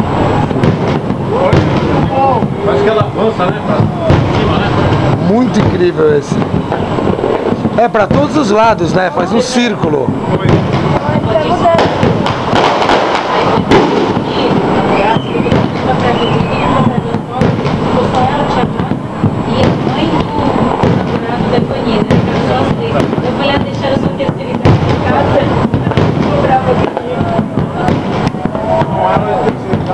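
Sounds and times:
firework shells bursting: 0.0s - 29.9s
onlookers' voices: 0.0s - 29.9s.

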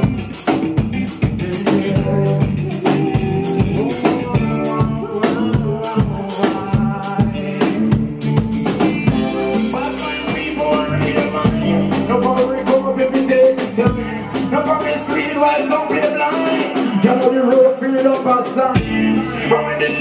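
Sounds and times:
drum kit hits and rimshots: 0.0s - 20.0s
keyboard and bass notes: 0.0s - 20.0s.

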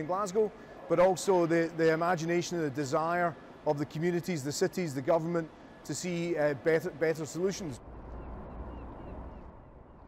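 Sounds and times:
low city rumble: 0.0s - 10.0s
faint bird chirps: 8.1s - 10.0s.

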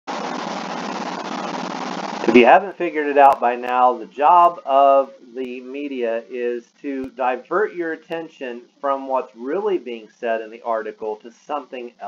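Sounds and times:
steady hiss: 0.2s - 12.0s.

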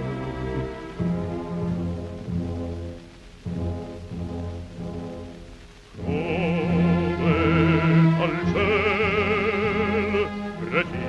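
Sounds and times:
orchestra playing low chords: 0.0s - 11.0s.

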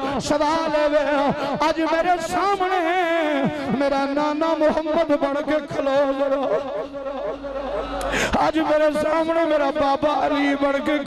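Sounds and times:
man's voice droning: 0.0s - 11.0s.

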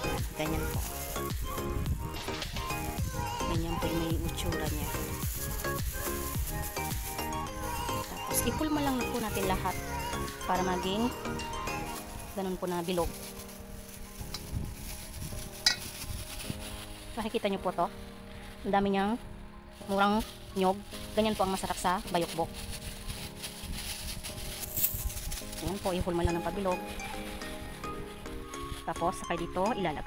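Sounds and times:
plastic glove crinkle: 0.0s - 30.0s
soft background music: 0.0s - 30.0s.

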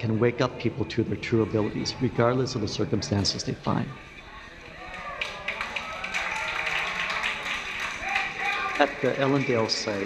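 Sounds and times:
voices: 0.0s - 10.0s
people clapping: 4.4s - 10.0s.

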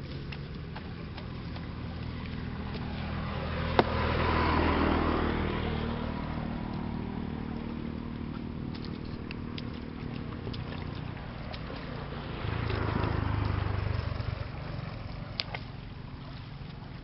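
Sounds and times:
motor engine humming: 0.0s - 17.0s.

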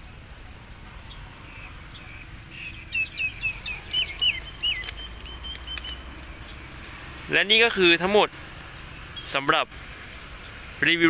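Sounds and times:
songbird chirping: 0.0s - 11.0s.

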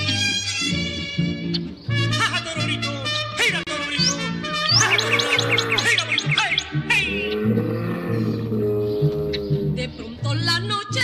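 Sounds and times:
instrumental folk music: 0.0s - 11.0s
birds chirping: 0.7s - 3.0s, 3.7s - 11.0s
low held bass notes: 4.7s - 10.7s.

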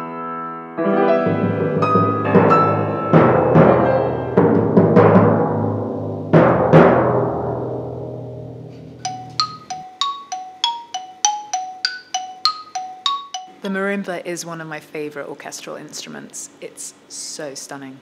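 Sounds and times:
timpani struck: 0.9s - 9.7s
marimba quick run: 9.0s - 13.5s.

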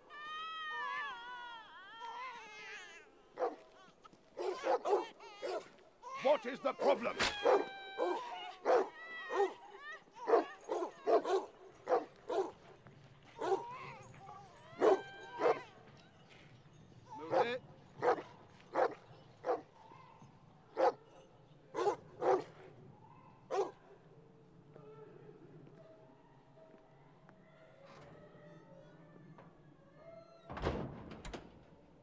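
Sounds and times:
dogs barking and yelping: 3.3s - 16.1s, 17.1s - 23.8s.

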